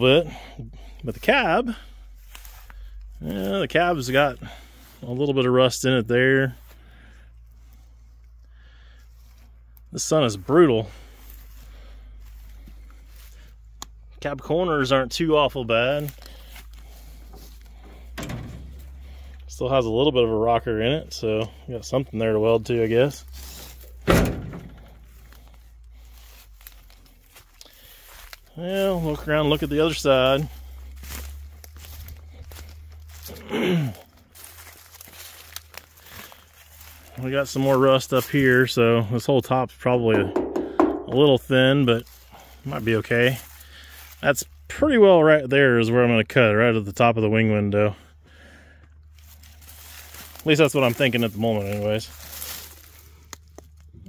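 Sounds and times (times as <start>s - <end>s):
faint rustling: 15.7s - 38.4s, 48.7s - 53.9s
truck door thunk: 18.1s - 18.8s, 24.0s - 24.9s, 40.2s - 41.2s
small knocks: 40.2s - 41.3s.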